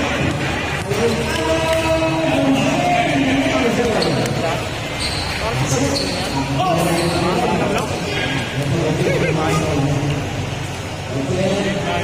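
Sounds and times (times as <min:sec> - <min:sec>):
spectators talking and shouting: 0:00.0 - 0:12.0.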